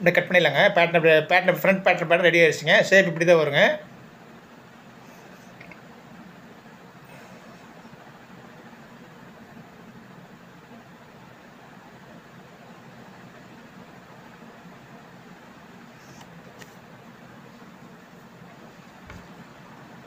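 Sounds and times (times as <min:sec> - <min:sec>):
even hiss: 0:00.0 - 0:20.0
low background hum: 0:00.0 - 0:20.0.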